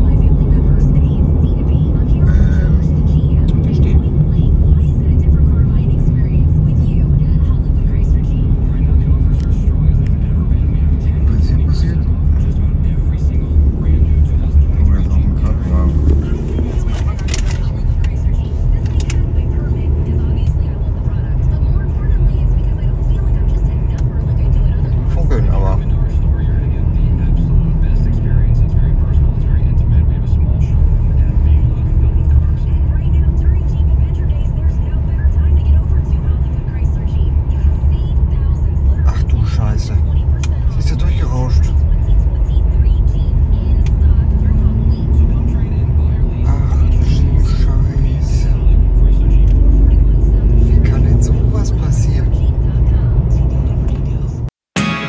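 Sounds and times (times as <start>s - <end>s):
faint talking: 0.0s - 54.5s
car road and engine rumble: 0.0s - 55.0s.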